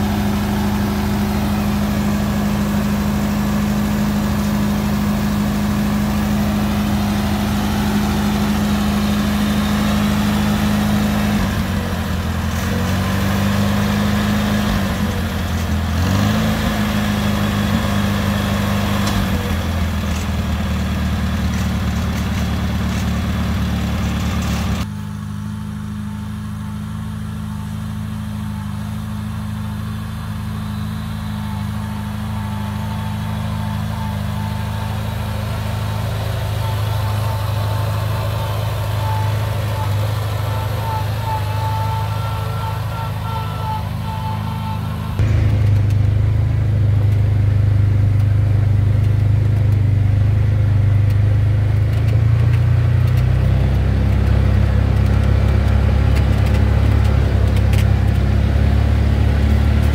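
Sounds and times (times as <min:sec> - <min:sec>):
tractor engine idling: 0:00.0 - 0:59.9.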